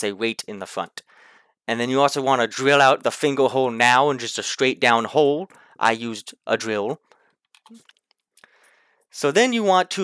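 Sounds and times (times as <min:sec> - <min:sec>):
soft breath: 0:01.1 - 0:01.6, 0:08.4 - 0:09.1.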